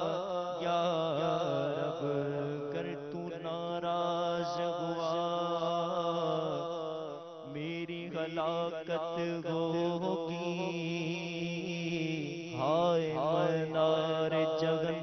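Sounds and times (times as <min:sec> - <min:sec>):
man chanting unaccompanied: 0:00.0 - 0:15.0.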